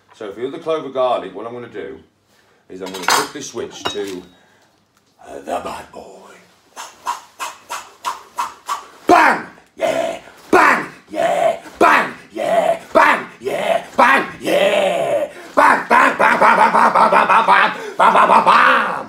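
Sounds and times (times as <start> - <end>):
man shouting and bellowing: 5.2 - 19.0.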